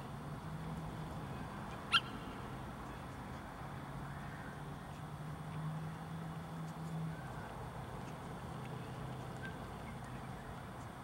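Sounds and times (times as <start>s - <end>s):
small dog yipping: 1.9s - 2.2s.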